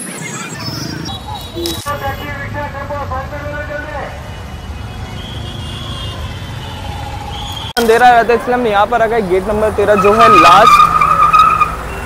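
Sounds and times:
people's voices: 0.0 - 4.3
traffic engines rumbling: 0.0 - 12.0.

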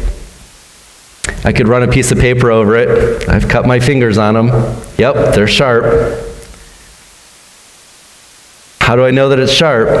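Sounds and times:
room tone hiss: 0.0 - 10.0
man talking: 1.2 - 6.4, 8.8 - 10.0.

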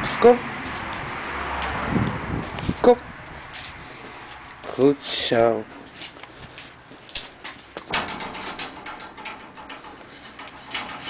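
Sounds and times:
puppy claws scraping metal fence: 3.6 - 11.0.

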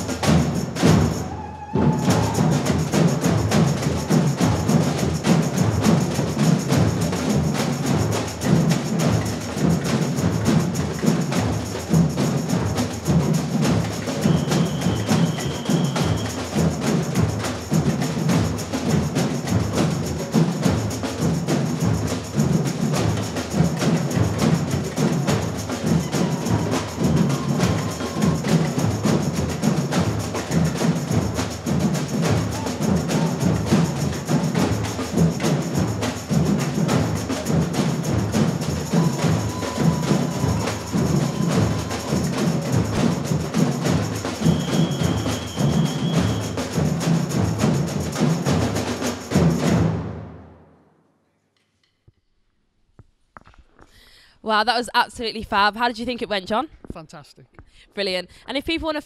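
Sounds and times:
samba drum band playing: 0.0 - 50.7.

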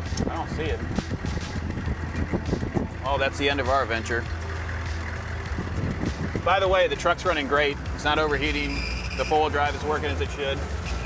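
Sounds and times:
diesel engine running inside cab: 0.0 - 11.0
loose metal rattles and clanks: 0.0 - 11.0.

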